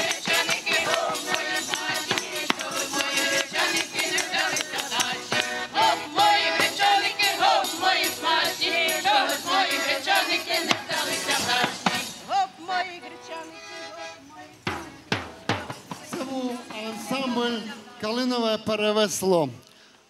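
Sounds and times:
frame drum beating: 0:00.0 - 0:12.3, 0:14.6 - 0:17.4
women's choir singing folk song: 0:00.0 - 0:18.5
man talking: 0:16.1 - 0:19.6.

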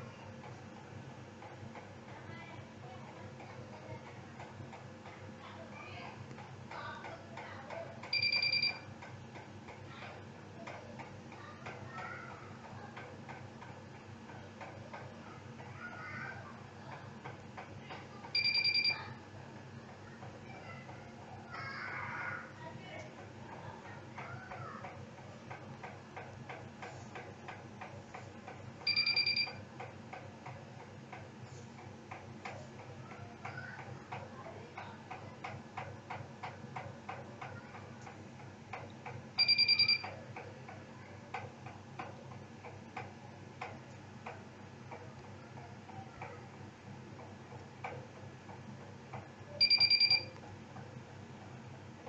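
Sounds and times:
regular ticking: 0:06.0 - 0:15.8, 0:16.8 - 0:19.1, 0:22.8 - 0:50.9.

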